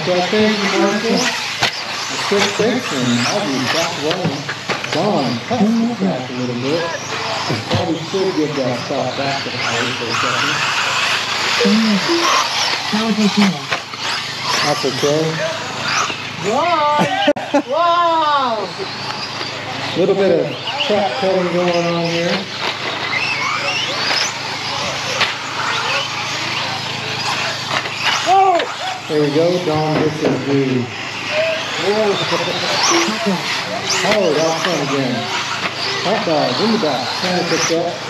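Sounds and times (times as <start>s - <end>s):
rc car motors whining: 0.0s - 38.0s
toy trucks racing on dirt: 0.0s - 38.0s.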